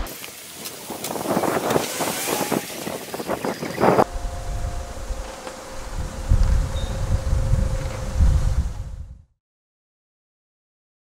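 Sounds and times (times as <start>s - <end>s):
even hiss of noise: 0.0s - 9.1s
wind rumbling on microphone: 0.0s - 9.4s
faint steady hum: 4.0s - 9.2s.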